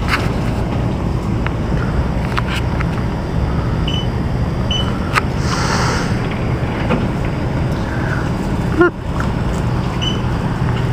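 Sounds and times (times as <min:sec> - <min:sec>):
steady low rumble: 0:00.0 - 0:10.9.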